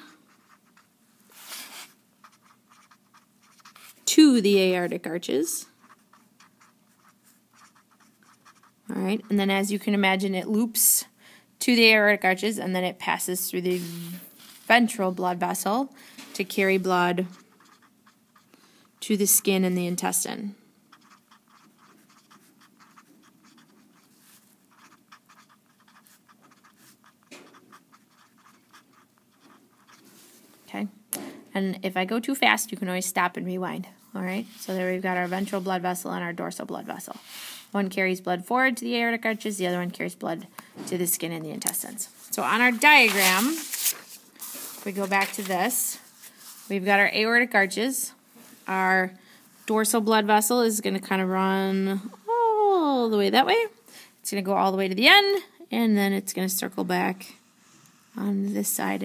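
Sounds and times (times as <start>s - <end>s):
marker scratching on paper: 0.0s - 10.0s, 13.5s - 15.6s, 16.4s - 20.3s, 20.9s - 30.5s, 34.4s - 35.9s.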